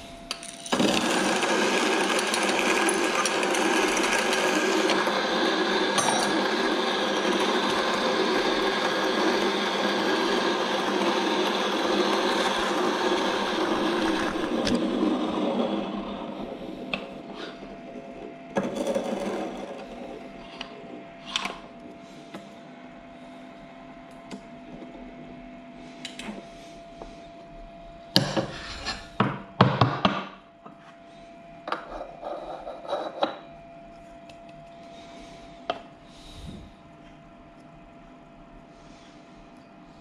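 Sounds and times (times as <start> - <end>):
coffee grinder motor whine: 0.6 - 22.0.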